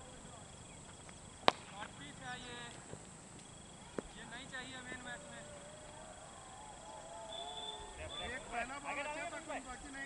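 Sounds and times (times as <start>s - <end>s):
cricket bat striking ball: 1.4s - 2.1s.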